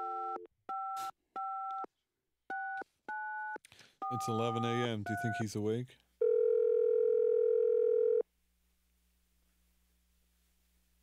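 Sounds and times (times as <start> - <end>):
telephone ringback tone: 6.2 - 8.2.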